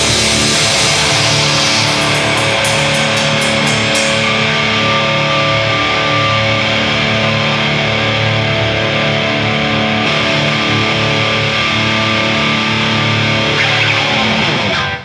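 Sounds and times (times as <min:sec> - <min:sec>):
drum and cymbal hits: 0:00.0 - 0:06.1
heavy metal band playing live: 0:00.0 - 0:15.0.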